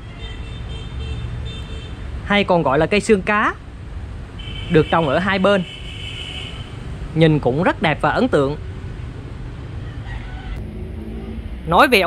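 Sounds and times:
distant road traffic rumble: 0.0 - 12.0.

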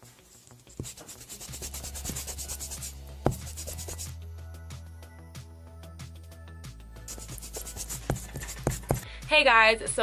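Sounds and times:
scratchy brush strokes: 0.0 - 4.1, 7.1 - 9.0
background music with bass: 1.1 - 10.0.

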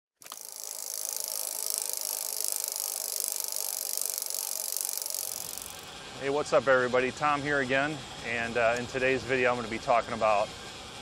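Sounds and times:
bicycle freehub ticking: 0.2 - 5.9.

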